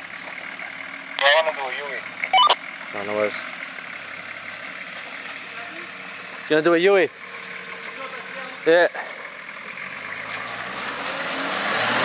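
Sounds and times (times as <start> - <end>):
vehicle engine running: 0.0 - 12.0.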